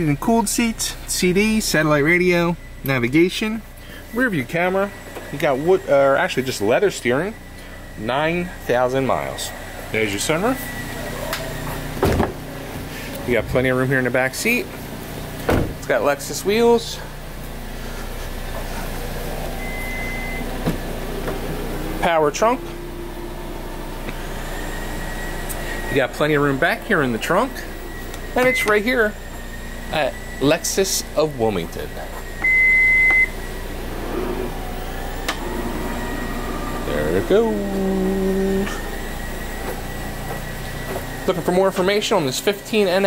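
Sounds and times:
short high beep: 28.4 - 28.8, 32.4 - 33.4.

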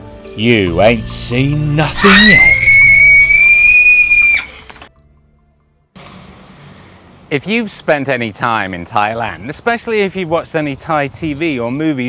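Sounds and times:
faint outdoor background noise: 1.3 - 12.0
high-pitched shriek: 1.9 - 4.7.

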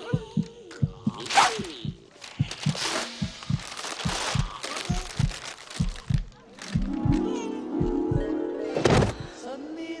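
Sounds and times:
heartbeat thuds: 0.0 - 8.4
background music: 6.6 - 10.0.

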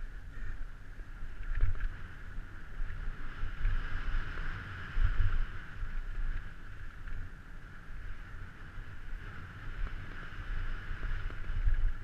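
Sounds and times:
bike rumbling over dirt trail: 0.0 - 12.0
wind buffeting microphone: 0.0 - 12.0.

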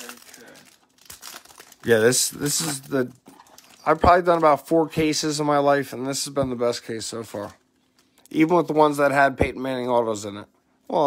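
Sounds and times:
plastic wrapper crinkling: 0.0 - 4.7.

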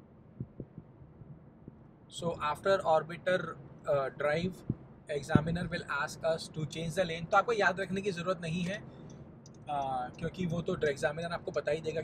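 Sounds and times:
car cabin rumble: 0.2 - 12.0
soft low thumps: 0.3 - 1.8, 4.5 - 5.9.

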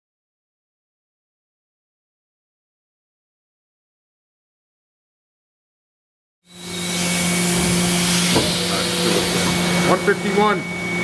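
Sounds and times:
low machine hum: 6.5 - 11.0
machine hiss: 6.5 - 11.0.

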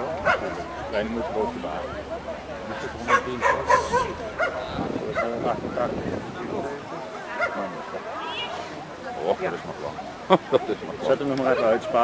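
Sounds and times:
dog barking and yipping: 3.1 - 4.6.

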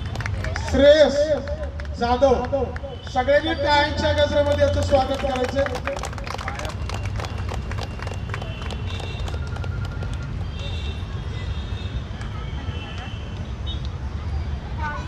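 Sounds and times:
audience hand clapping: 0.0 - 3.3, 4.2 - 10.7.

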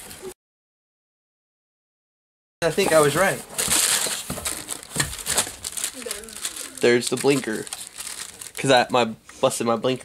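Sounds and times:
paper and plastic bag crinkling: 2.8 - 9.0.

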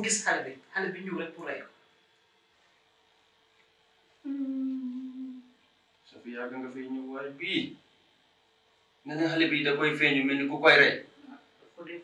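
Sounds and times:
person humming: 4.2 - 5.5.

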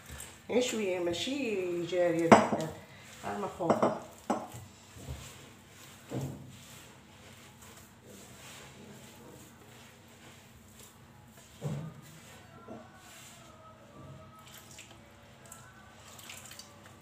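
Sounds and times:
hands kneading dough: 0.0 - 17.0
dough knocking against clay bowl: 3.6 - 5.2.

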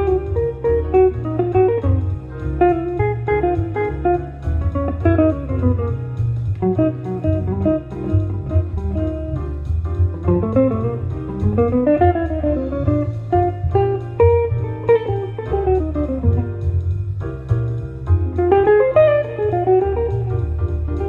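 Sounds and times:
bass accompaniment: 0.0 - 21.0
electric guitar jazz lines: 0.0 - 21.0.

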